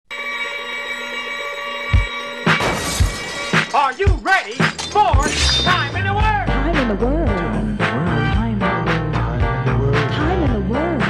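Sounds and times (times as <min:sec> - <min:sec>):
music with a beat: 0:01.8 - 0:02.7, 0:03.5 - 0:11.0
person speaking: 0:03.7 - 0:07.5.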